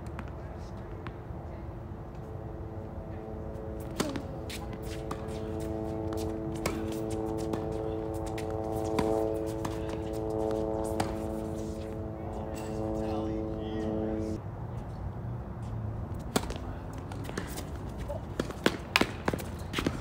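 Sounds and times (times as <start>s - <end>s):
held chord of steady tones: 2.3s - 14.4s
rackets striking tennis ball: 3.8s - 13.5s, 16.2s - 20.0s.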